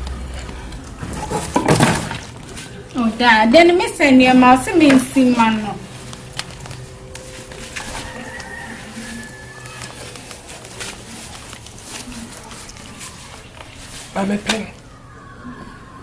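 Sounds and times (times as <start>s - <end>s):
low steady hum: 0.0s - 16.0s
backpack clicks and rustling: 4.7s - 14.7s.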